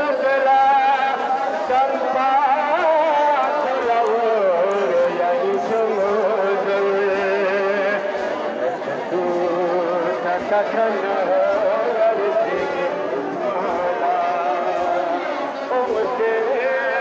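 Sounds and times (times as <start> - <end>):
many voices chanting a lament: 0.0 - 17.0.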